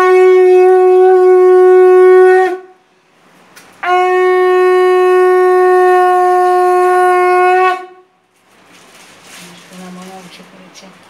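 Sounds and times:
conch shell blown: 0.0s - 3.0s, 3.8s - 8.4s.

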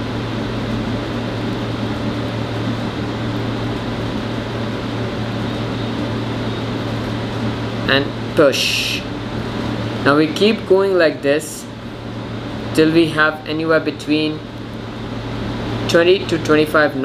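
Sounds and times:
ventilation hum and hiss: 0.0s - 17.0s.

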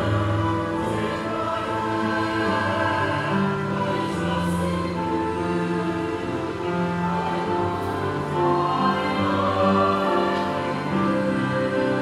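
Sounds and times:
choir singing a slow hymn: 0.0s - 12.0s.

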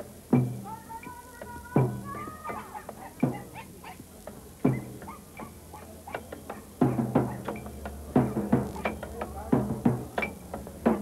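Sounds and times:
deep drum beats: 6.7s - 11.0s.

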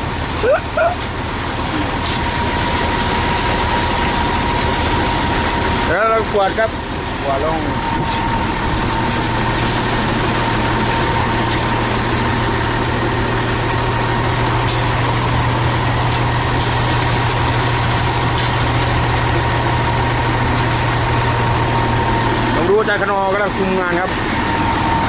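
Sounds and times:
diesel engine running steadily: 0.0s - 25.0s
thin steady whine: 0.0s - 25.0s.

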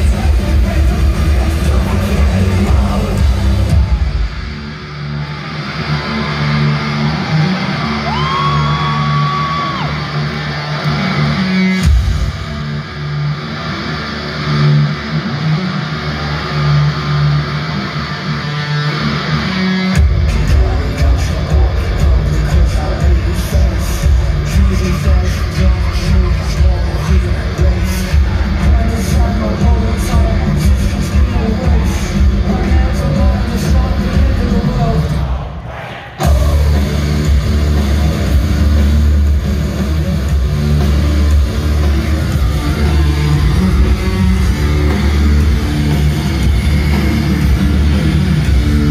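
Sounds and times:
heavy electric guitar and bass: 0.0s - 48.9s
heavy rock band playing live: 0.0s - 48.9s.

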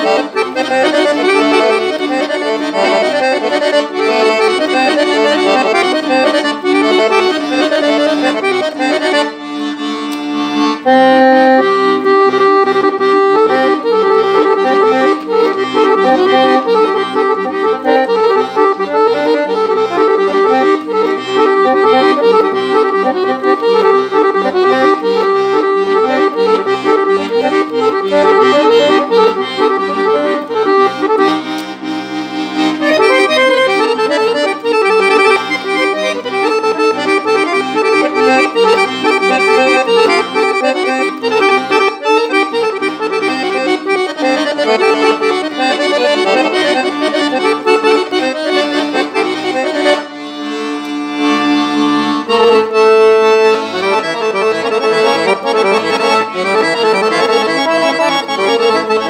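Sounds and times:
accordion dance tune: 0.0s - 59.0s
rhythmic bass line: 0.0s - 59.0s.

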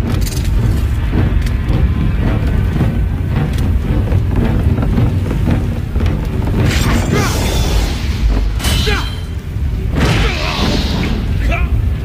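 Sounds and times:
loud low rumble: 0.0s - 12.0s
soundtrack music: 0.0s - 12.0s.

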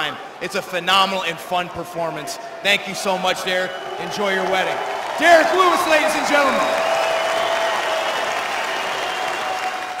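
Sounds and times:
crowd applauding: 3.5s - 10.0s.

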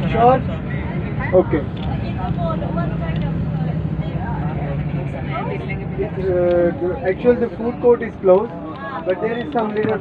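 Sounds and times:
bus engine humming: 0.0s - 10.0s
passengers talking faintly: 0.0s - 10.0s.

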